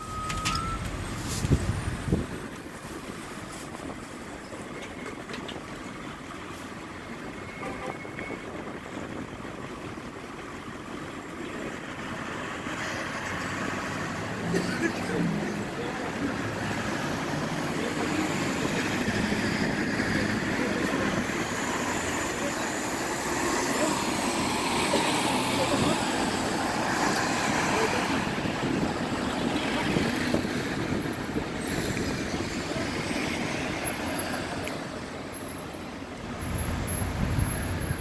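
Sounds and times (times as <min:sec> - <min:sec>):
buses and cars passing: 0:00.0 - 0:38.0
engine and road noise: 0:00.0 - 0:38.0.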